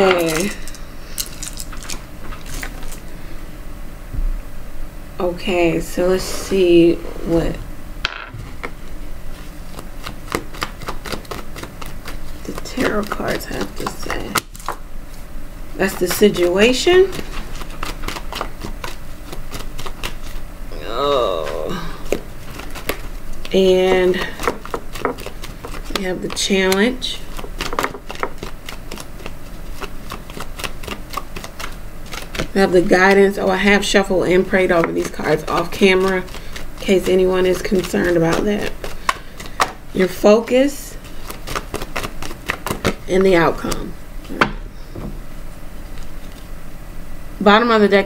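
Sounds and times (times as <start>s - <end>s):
cards being shuffled: 0.0s - 3.0s, 8.5s - 15.2s, 16.0s - 20.5s, 21.4s - 33.2s, 34.6s - 40.2s, 41.0s - 44.4s.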